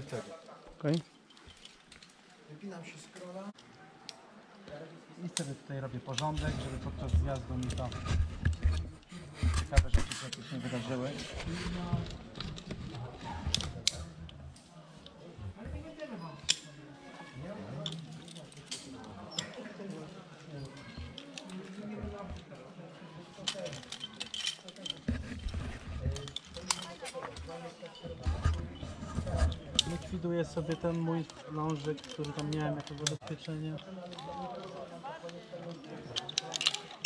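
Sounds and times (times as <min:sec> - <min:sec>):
metal carabiners clinking: 0:00.9 - 0:02.2, 0:23.3 - 0:28.6, 0:29.5 - 0:37.0.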